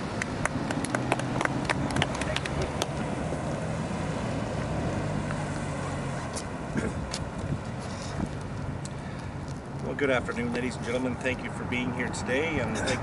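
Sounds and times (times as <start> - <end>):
vehicle engine humming: 0.0 - 13.0
traffic hiss: 1.6 - 13.0.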